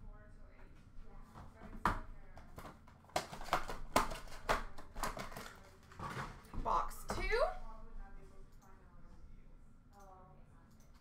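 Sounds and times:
card boxes tapping and knocking: 1.3s - 7.5s.

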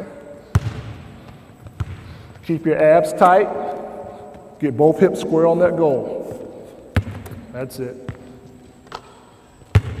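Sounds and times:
basketball bouncing on hardwood: 1.6s - 2.0s, 7.0s - 7.3s.

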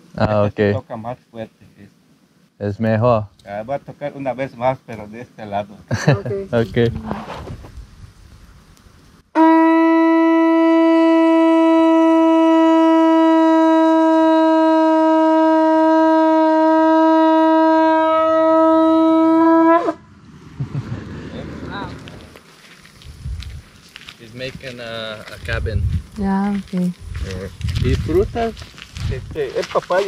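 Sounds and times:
conch shell trumpet blown: 9.3s - 20.1s.

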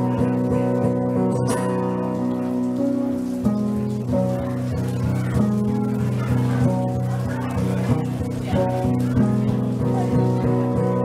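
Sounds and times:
guitar chord ringing: 0.0s - 11.0s.

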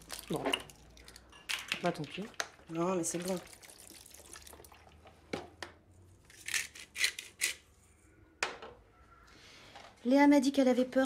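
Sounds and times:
milk pouring into a bowl: 0.0s - 5.2s.

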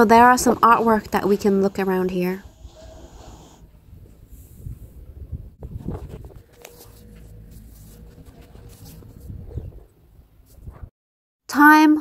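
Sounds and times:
wind rumble on microphone: 3.7s - 10.9s.

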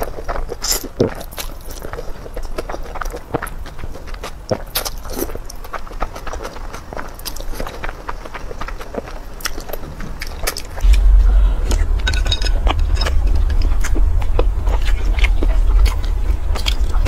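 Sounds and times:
person slurping and chewing noodles: 0.0s - 10.9s.

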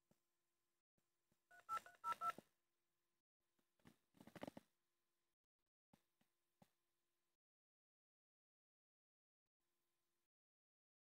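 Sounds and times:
touch-tone keypad beeps: 1.5s - 2.3s.

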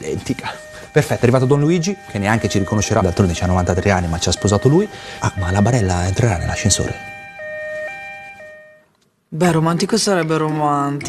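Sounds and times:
two-tone ambulance siren: 0.0s - 8.9s.

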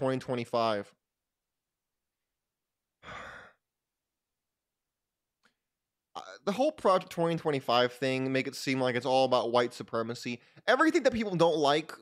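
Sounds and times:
man sighing: 3.0s - 3.6s.

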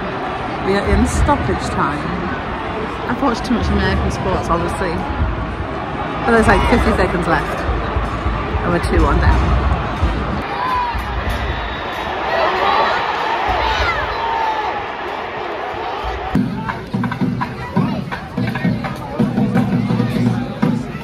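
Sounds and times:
stadium crowd shouting: 0.0s - 21.0s.

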